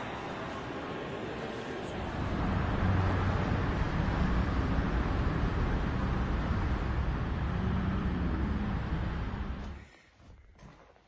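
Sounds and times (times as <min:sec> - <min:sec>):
faint low hum: 0:00.0 - 0:10.0
outdoor rumble: 0:00.8 - 0:09.9.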